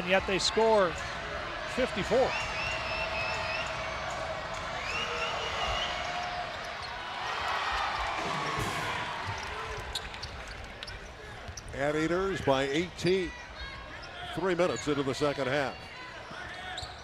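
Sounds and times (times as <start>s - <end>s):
arena crowd shouting: 0.0s - 9.8s
basketball bouncing on court: 8.2s - 12.6s.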